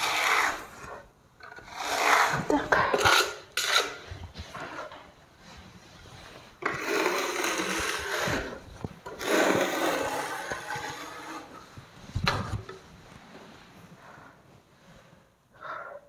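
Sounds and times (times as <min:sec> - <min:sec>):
plastering float scraping plaster: 0:00.0 - 0:12.9.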